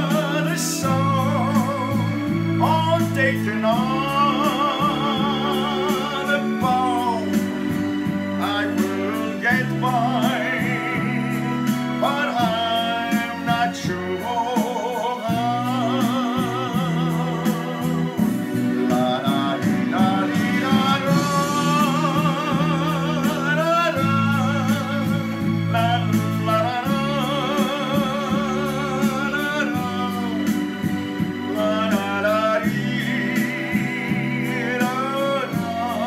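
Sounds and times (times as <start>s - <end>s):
instrumental backing track: 0.0s - 36.0s
man singing a slow ballad: 0.0s - 36.0s.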